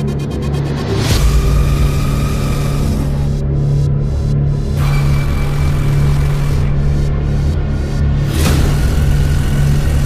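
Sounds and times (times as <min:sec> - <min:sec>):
steady droning note: 0:00.0 - 0:10.0.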